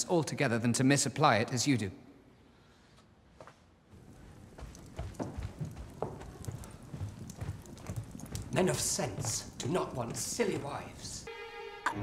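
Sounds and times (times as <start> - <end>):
brisk footsteps: 3.4 - 11.3.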